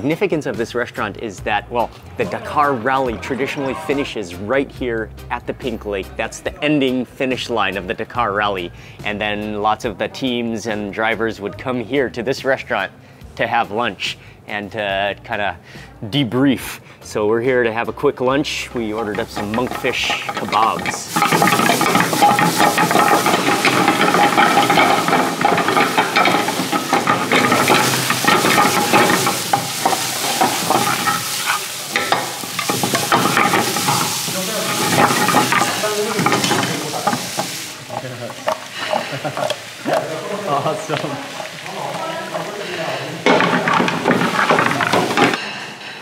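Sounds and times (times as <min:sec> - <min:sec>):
pan clattering and scraping: 0:18.8 - 0:45.5
food sizzling in hot oil: 0:18.9 - 0:45.4.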